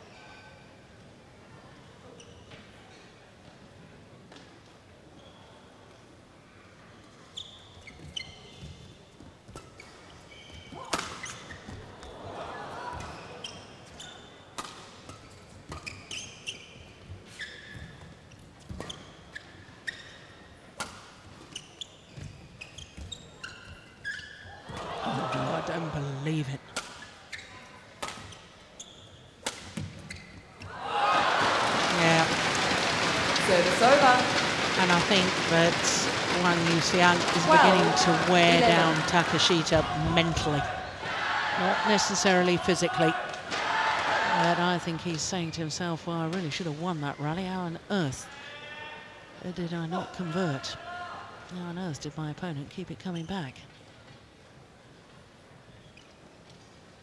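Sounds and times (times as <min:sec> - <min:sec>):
shoes squeaking on court: 0:02.0 - 0:03.1, 0:05.1 - 0:05.6, 0:07.0 - 0:12.2, 0:12.9 - 0:30.8, 0:33.6 - 0:40.7, 0:55.6 - 0:56.8
crowd applause and cheering: 0:30.7 - 0:42.3.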